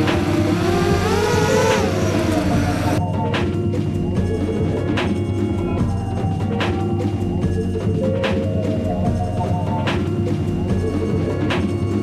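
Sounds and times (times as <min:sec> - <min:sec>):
small motor whirring: 0:00.0 - 0:03.0
music with drum beat: 0:00.0 - 0:12.0.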